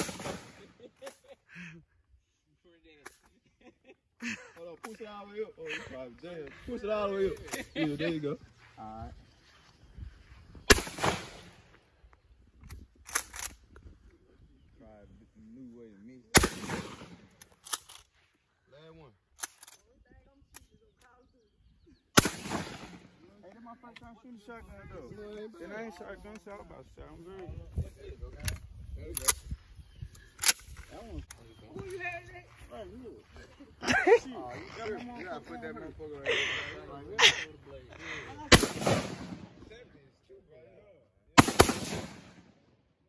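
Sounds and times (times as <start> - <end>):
shotgun shot: 0.0 - 0.7, 10.7 - 11.6, 16.4 - 17.3, 22.2 - 23.1, 38.5 - 39.6, 41.4 - 42.5
sharp clicks: 12.6 - 13.9, 28.4 - 29.5, 30.2 - 31.4.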